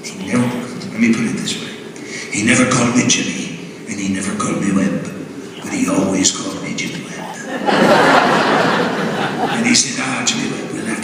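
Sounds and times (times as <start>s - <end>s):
audience laughter: 7.4s - 10.1s.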